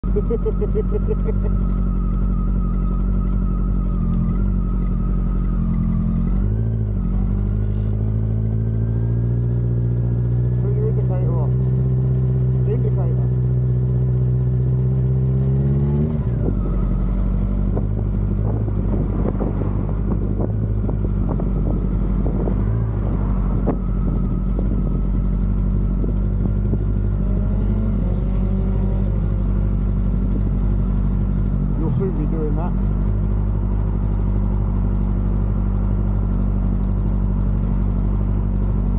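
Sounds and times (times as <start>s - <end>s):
motorcycle engine: 0.0s - 38.9s
wind noise: 17.7s - 25.2s.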